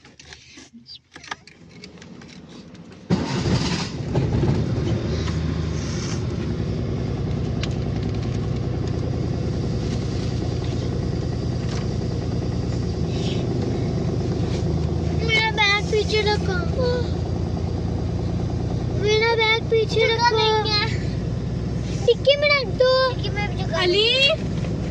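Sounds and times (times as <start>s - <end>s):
car engine starting and idling: 0.0s - 24.9s.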